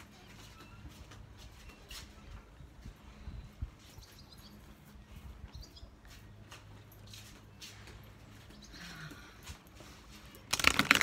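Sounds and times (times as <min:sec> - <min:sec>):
cards being shuffled by hand: 0:10.4 - 0:11.0.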